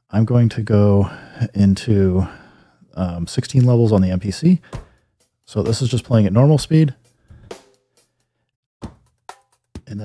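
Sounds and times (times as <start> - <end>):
sampled drum loop: 3.2 - 8.1, 8.8 - 10.0.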